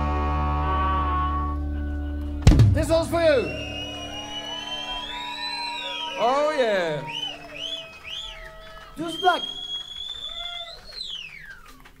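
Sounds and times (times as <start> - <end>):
guitar amplifier feedback whine: 0.0 - 6.2.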